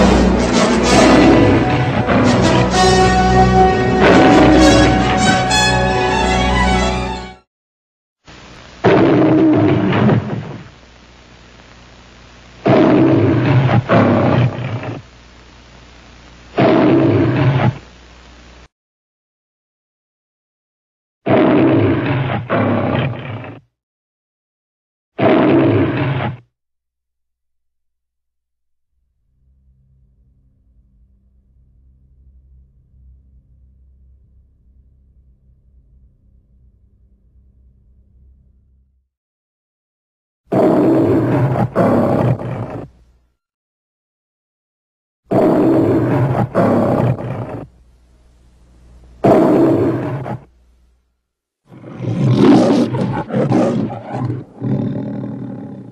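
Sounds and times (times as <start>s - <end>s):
lion roaring: 0.0s - 5.2s, 8.8s - 10.7s, 12.6s - 15.0s, 16.6s - 17.8s, 21.3s - 23.7s, 25.2s - 26.4s, 40.5s - 42.9s, 45.3s - 47.7s, 49.2s - 50.5s, 51.7s - 55.9s.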